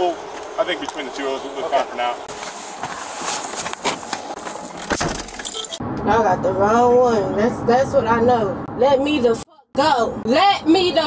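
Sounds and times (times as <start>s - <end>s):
metallic jingling and rustling: 4.6s - 5.8s.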